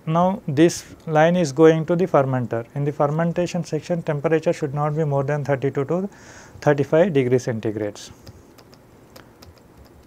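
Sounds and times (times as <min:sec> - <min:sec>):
stylus tapping on pen tablet: 0:08.2 - 0:10.0.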